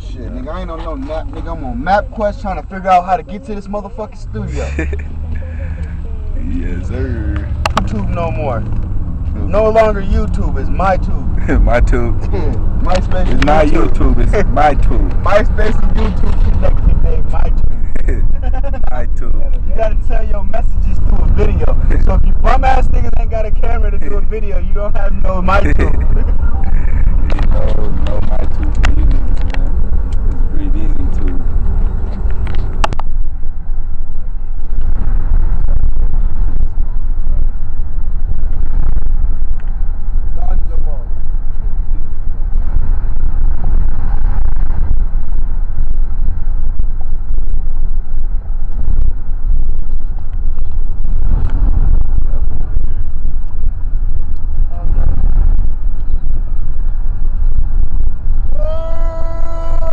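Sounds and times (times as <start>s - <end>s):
indistinct voices: 0.0s - 32.8s, 58.4s - 59.9s
road and engine rumble: 0.0s - 59.9s.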